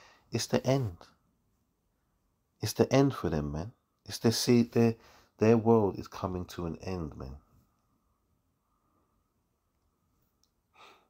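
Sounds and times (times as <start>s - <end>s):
short breath: 0.0s - 0.3s, 5.0s - 5.4s, 10.7s - 11.0s.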